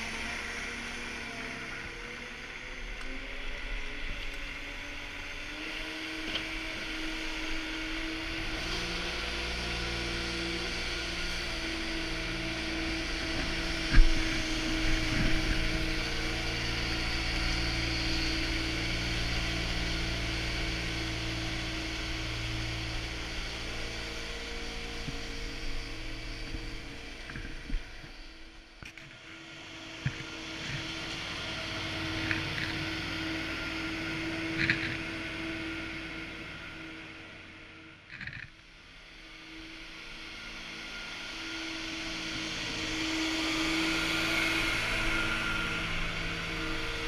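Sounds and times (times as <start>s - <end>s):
ice resurfacer engine running: 0.0s - 47.0s.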